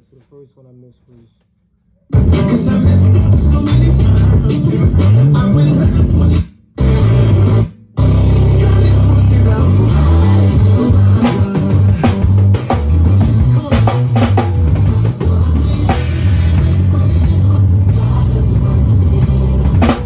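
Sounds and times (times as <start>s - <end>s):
acoustic drum kit: 2.1s - 20.0s
recorded song with bass and guitar: 2.1s - 20.0s.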